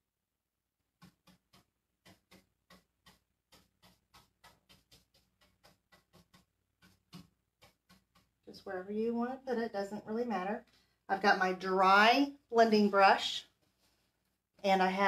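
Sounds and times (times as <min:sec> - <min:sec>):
paintbrush dabbing taps: 0:00.9 - 0:10.8, 0:12.5 - 0:15.0.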